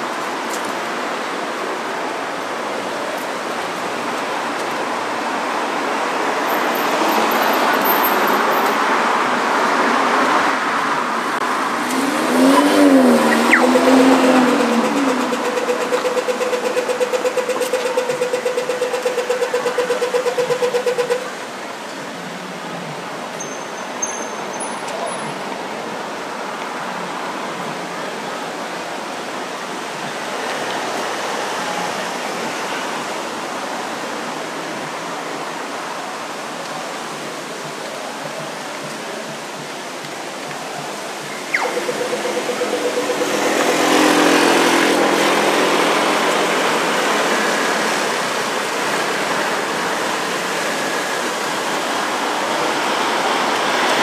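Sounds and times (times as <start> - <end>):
city traffic: 0.0 - 54.0
crossing signal rapid ticking: 11.8 - 21.6, 40.8 - 54.0
crossing signal warbling tone: 12.2 - 18.9, 41.4 - 44.8.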